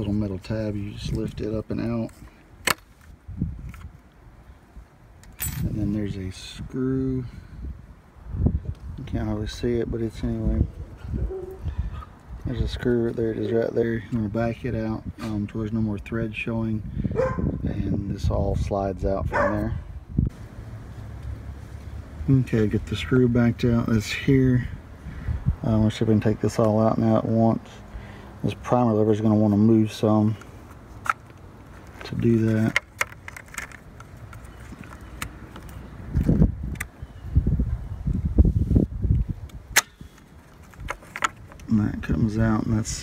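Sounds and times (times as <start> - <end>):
wind buffeting microphone: 3.2 - 4.0, 5.6 - 13.5, 14.3 - 20.4, 22.8 - 26.5, 35.8 - 43.0
sharp plastic clicks: 32.7 - 37.0, 39.4 - 41.7.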